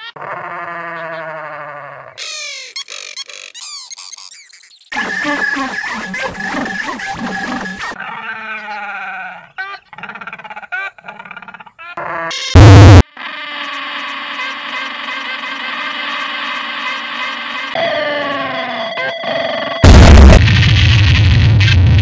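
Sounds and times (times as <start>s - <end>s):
loud distorted blast: 12.6s - 13.0s, 19.8s - 22.0s.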